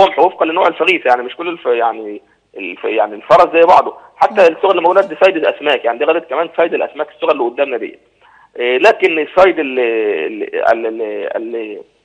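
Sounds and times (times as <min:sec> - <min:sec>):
man talking over telephone: 0:02.7 - 0:07.8.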